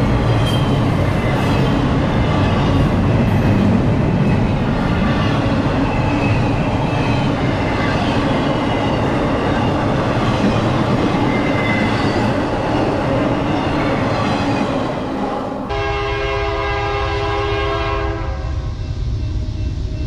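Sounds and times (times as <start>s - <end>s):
freight cars rumbling and clattering: 0.0s - 15.6s
low train rumble: 0.0s - 20.0s
diesel locomotive horn: 15.7s - 19.7s.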